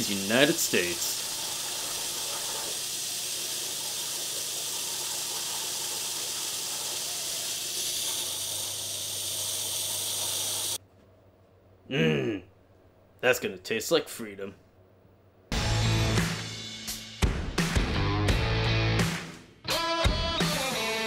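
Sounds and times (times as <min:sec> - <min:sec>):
waterjet hissing: 0:00.0 - 0:10.8.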